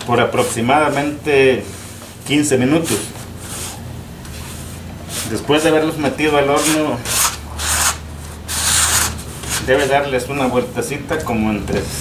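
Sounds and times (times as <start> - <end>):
brushing swipes on wooden boards: 2.8 - 5.5.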